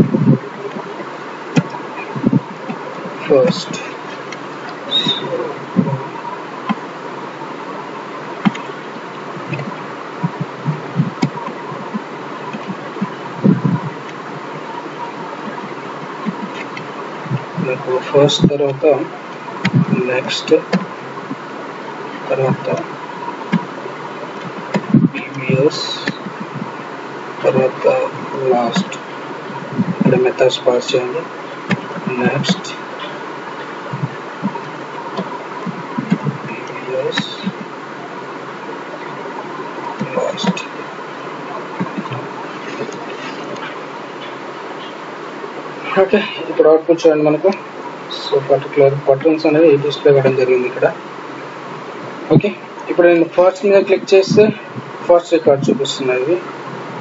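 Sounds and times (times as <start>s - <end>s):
low murmurs: 0.0s - 57.0s
microphone buzzing hiss: 0.0s - 57.0s.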